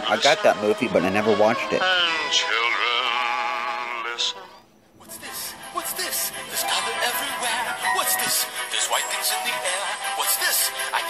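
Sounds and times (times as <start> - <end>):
person singing with vibrato: 0.0 - 11.0.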